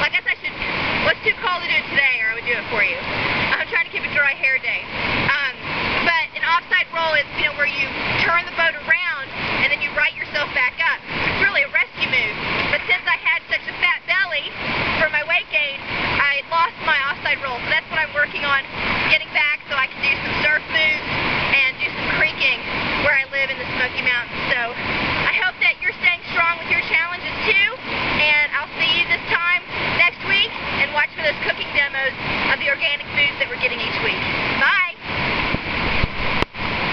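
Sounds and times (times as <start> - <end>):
woman speaking: 0.0 - 35.0
woman talking: 0.0 - 35.0
river water rushing: 0.0 - 36.9.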